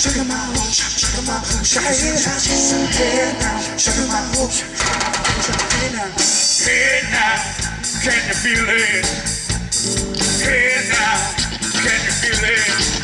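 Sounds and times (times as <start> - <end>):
drum kit beat: 0.0 - 13.0
electric guitars: 0.0 - 13.0.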